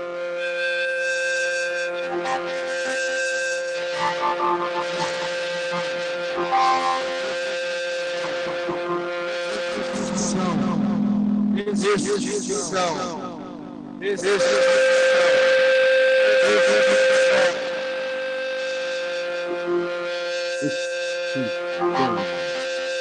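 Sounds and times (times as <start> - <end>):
electronic droning tone: 0.0 - 23.0
gliding electronic pitches: 3.9 - 14.1, 17.2 - 23.0.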